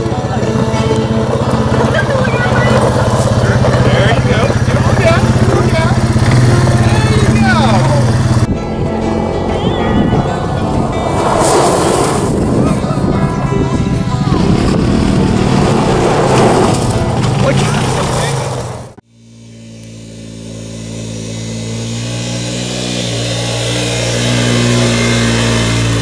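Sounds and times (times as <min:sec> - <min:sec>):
voices: 0:00.0 - 0:08.5, 0:09.3 - 0:18.8
background music: 0:00.0 - 0:17.8
atv engine drone: 0:00.0 - 0:26.0.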